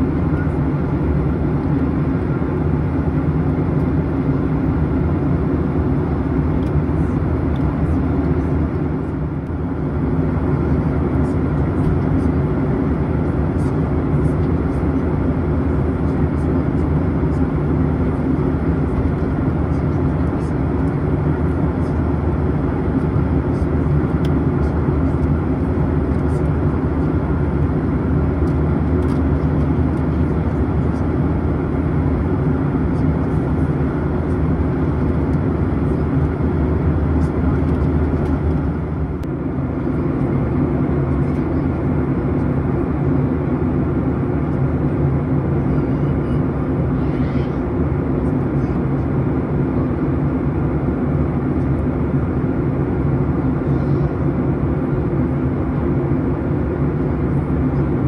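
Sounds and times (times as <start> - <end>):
airplane cabin drone: 0.0 - 58.0.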